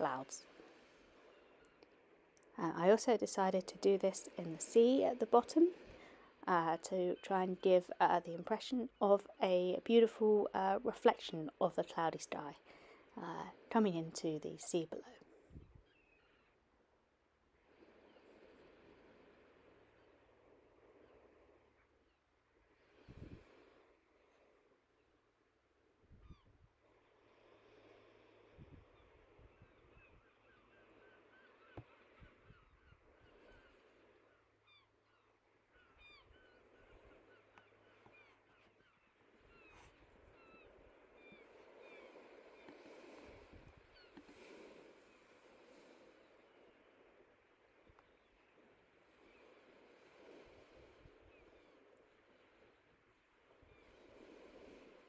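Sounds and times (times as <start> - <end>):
distant bird chirps: 15.8 - 16.6, 28.9 - 43.2, 43.9 - 46.9.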